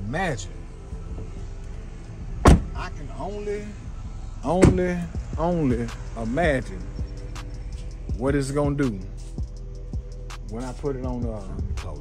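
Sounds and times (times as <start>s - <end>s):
steady low hum: 0.0s - 12.0s
truck door shutting: 2.4s - 2.9s, 4.5s - 5.0s.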